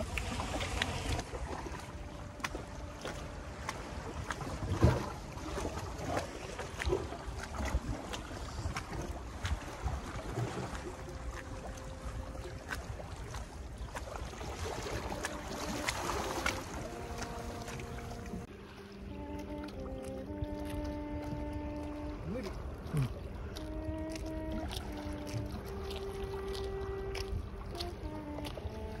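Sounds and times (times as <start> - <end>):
background music of held notes: 15.2 - 22.6, 23.4 - 29.0.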